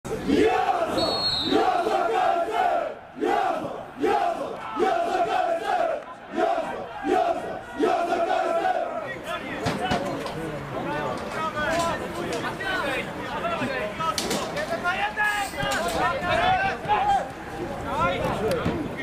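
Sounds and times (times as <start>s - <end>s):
football supporters chanting: 0.1s - 9.9s.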